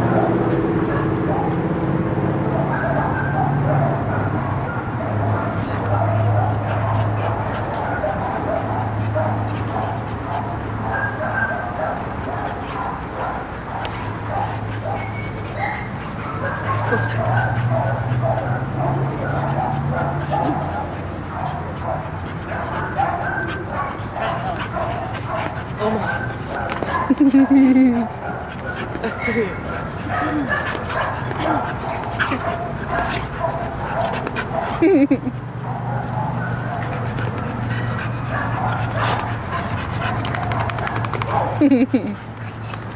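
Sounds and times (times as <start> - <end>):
dogs play barking and yipping: 0.0 - 42.9.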